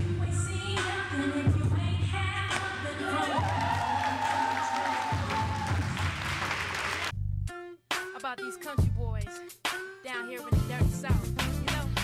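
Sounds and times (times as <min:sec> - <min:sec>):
people clapping: 0:02.6 - 0:07.1.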